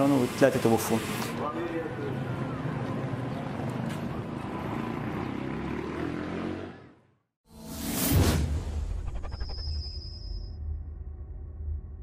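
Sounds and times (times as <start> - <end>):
street noise: 0.0 - 7.2
whoosh with low boom: 7.7 - 12.0.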